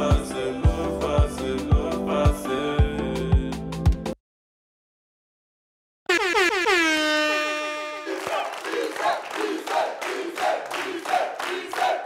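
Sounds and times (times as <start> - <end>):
air horn sound effect: 6.1 - 8.5.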